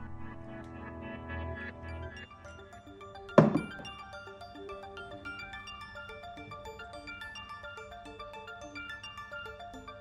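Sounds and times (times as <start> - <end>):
background music: 0.0 - 10.0
object thunk on workbench: 3.4 - 3.9.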